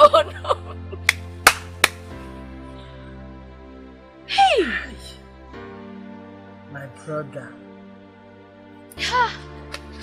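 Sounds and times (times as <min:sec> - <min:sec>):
background music: 0:00.0 - 0:10.0
sharp hand claps: 0:01.0 - 0:02.1.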